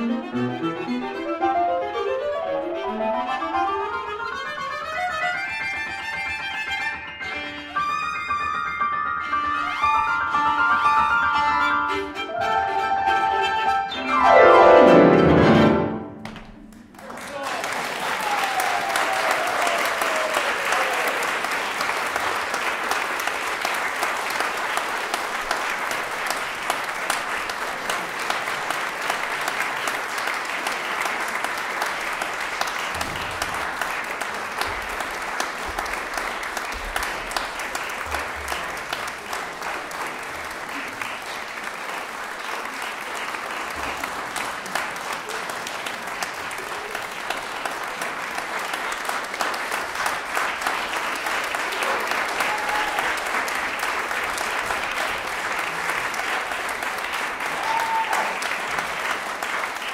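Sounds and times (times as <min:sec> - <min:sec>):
audience applauding: 0:09.5 - 0:59.9.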